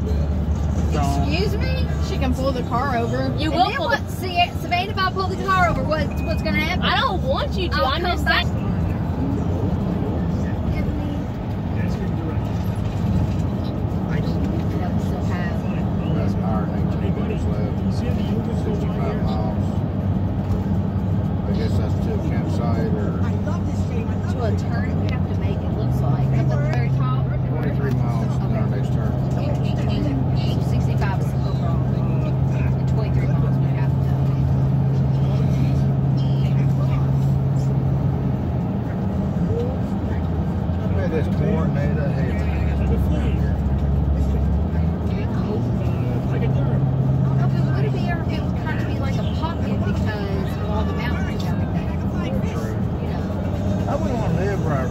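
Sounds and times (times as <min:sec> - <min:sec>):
faint indistinct voices: 0:00.0 - 0:54.9
road and engine rumble: 0:00.0 - 0:54.9.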